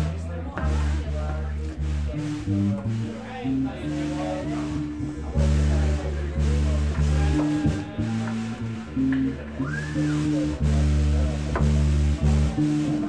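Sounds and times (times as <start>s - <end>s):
keyboard playing low notes: 0.0s - 13.0s.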